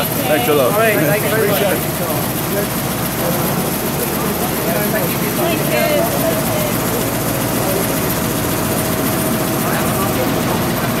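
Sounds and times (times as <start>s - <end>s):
engine running: 0.0s - 11.0s
faint voices: 0.0s - 11.0s.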